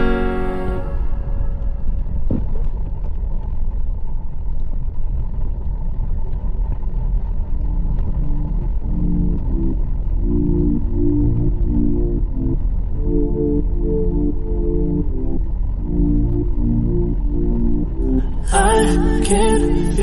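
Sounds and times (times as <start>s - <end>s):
wind and motorcycle engine rumble: 0.0s - 20.0s.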